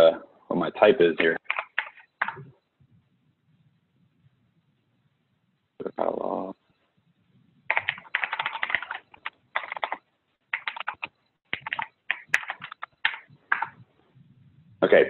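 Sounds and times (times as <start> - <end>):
typing on computer keyboard: 1.4 - 2.5, 7.7 - 13.8.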